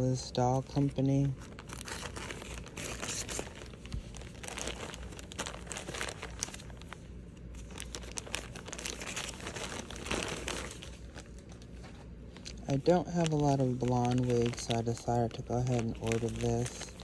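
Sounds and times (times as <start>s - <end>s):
plastic bag crinkling: 0.4s - 17.0s.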